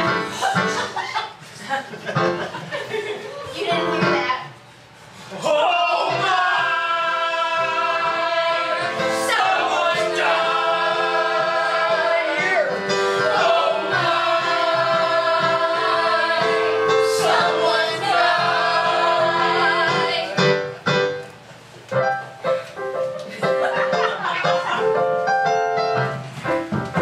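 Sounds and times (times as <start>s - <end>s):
mixed choir singing: 6.0s - 20.6s.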